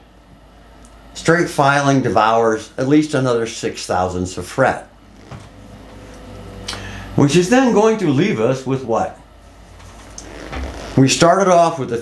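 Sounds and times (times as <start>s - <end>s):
low hum: 2.4s - 11.0s.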